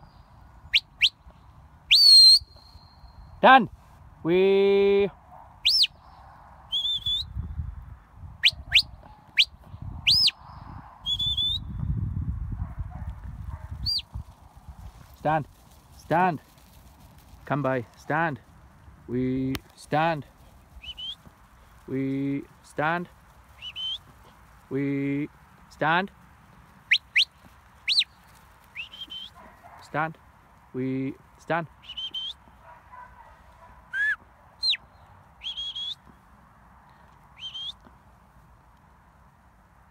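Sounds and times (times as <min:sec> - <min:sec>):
high clear whistles: 0:01.9 - 0:03.4, 0:06.7 - 0:07.5, 0:08.4 - 0:11.9, 0:20.8 - 0:21.2, 0:23.6 - 0:24.1, 0:28.8 - 0:29.4, 0:31.8 - 0:32.4, 0:33.9 - 0:34.8, 0:35.4 - 0:36.1, 0:37.4 - 0:37.8.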